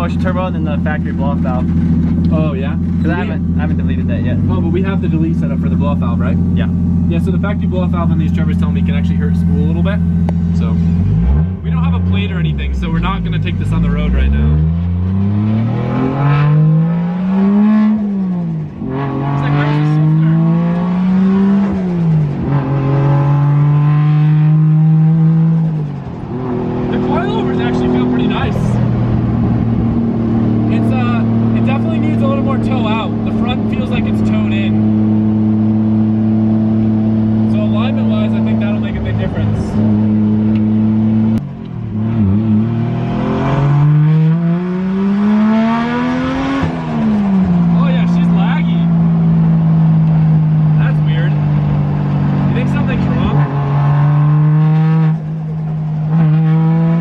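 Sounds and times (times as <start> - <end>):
car engine revving through gears: 0.0 - 57.0.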